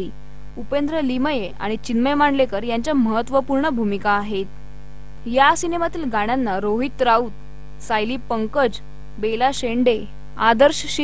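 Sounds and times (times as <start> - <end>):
woman speaking: 0.0 - 4.5, 5.3 - 11.0
electrical mains hum and buzz: 0.0 - 11.0.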